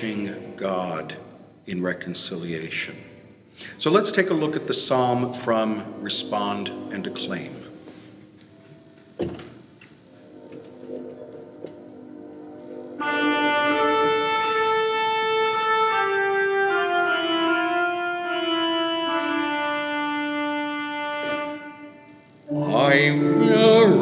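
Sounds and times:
organ playing held chords: 0.0 - 24.0.

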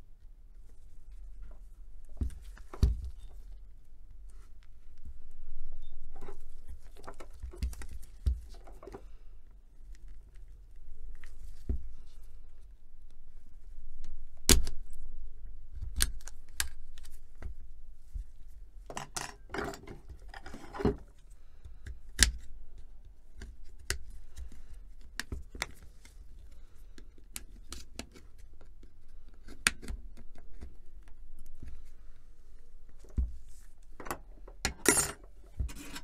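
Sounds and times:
gloved hands handling rustle: 0.5 - 12.8.

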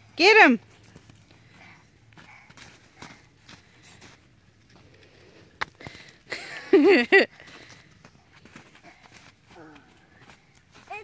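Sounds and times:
footsteps crunching in snow: 0.6 - 5.1, 7.4 - 11.0.

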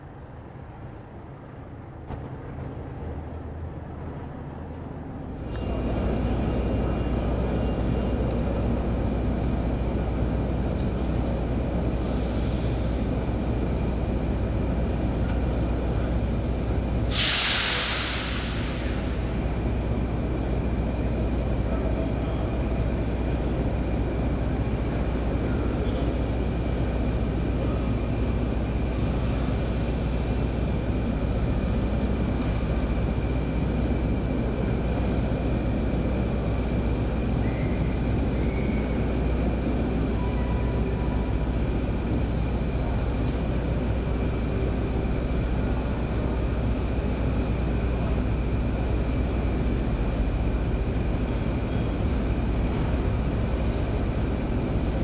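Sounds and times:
low rumble of trains: 0.0 - 55.0.

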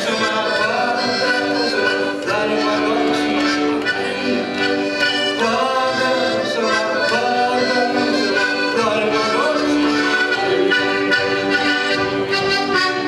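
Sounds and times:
button accordion duet: 0.0 - 13.0.

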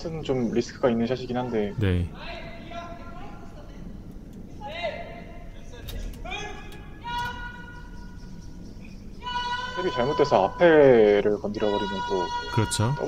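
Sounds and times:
steady low hum: 1.7 - 11.6
distant high-pitched calls: 6.3 - 13.0.

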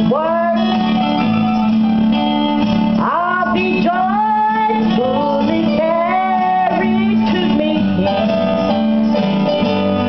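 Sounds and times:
woman singing through a pa: 0.0 - 0.9, 3.0 - 8.6
live band keyboard and bass: 0.0 - 10.0.

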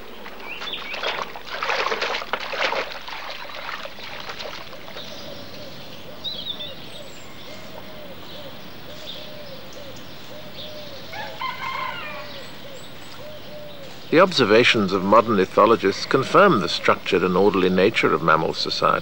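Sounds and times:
birds cooing: 0.0 - 19.0.

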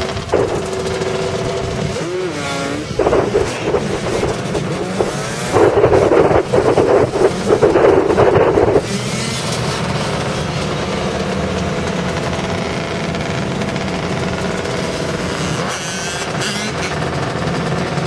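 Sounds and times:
dirt bike and quad engines: 0.0 - 18.0.

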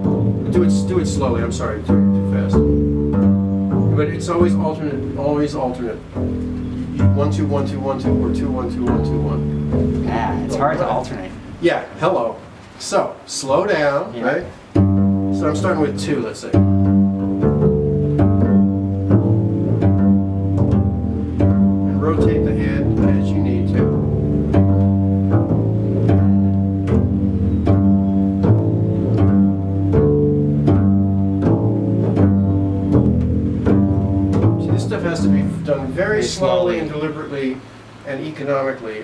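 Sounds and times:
plucked double bass: 0.0 - 12.6, 14.4 - 37.4.

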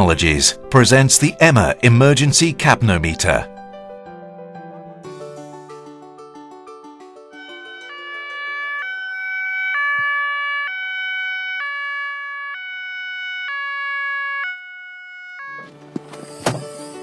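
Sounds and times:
ambulance two-tone siren: 7.4 - 16.6.

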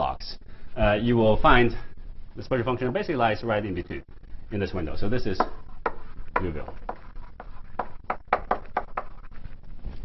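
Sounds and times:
chalk tapping and scraping on blackboard: 5.4 - 9.5.

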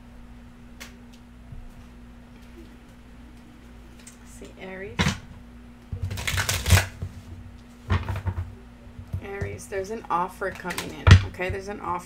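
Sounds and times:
cards being shuffled: 6.0 - 7.2
cards snapping: 6.1 - 7.0.

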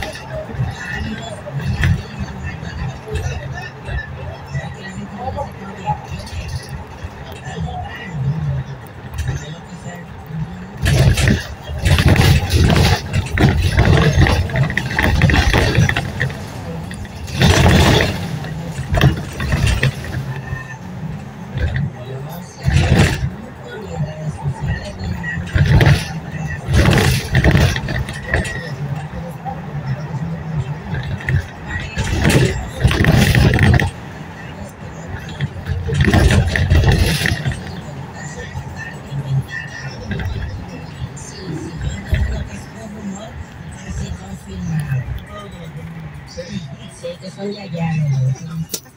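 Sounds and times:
indistinct voices talking: 0.0 - 48.9
road and engine noise inside vehicle: 0.0 - 48.9.

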